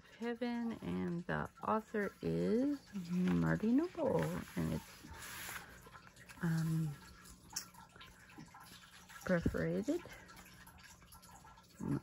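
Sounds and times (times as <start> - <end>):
hand brushing paper pages: 3.2 - 5.9.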